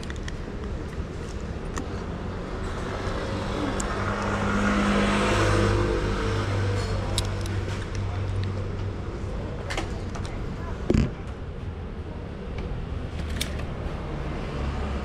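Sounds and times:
low traffic hum: 0.0s - 15.0s
vehicle passing: 2.0s - 7.8s.

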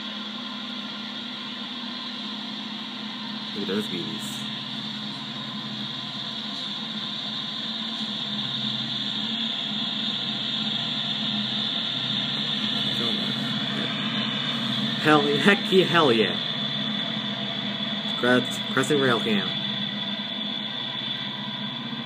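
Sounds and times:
freight train wheels rumbling on rails: 3.0s - 22.0s.

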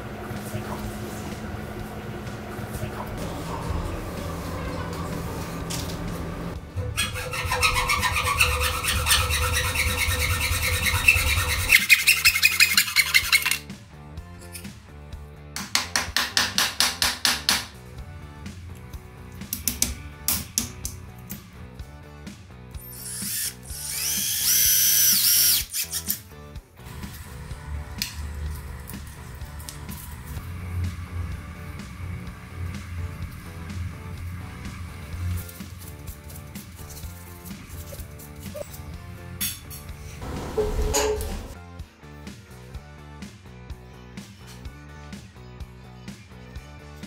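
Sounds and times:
background music: 0.0s - 47.0s
rubbing or scraping: 2.8s - 13.6s, 32.8s - 38.9s, 39.8s - 41.6s
rhythmic tool strokes: 6.8s - 13.7s, 22.8s - 26.2s
power tool whining: 22.8s - 26.2s, 26.8s - 35.8s.

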